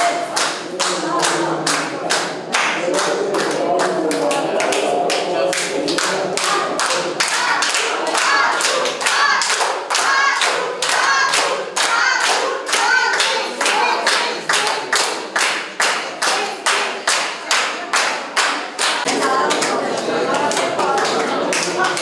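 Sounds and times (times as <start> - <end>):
voices chanting: 0.0 - 17.8, 19.0 - 22.0
crowd clapping in unison: 0.0 - 22.0.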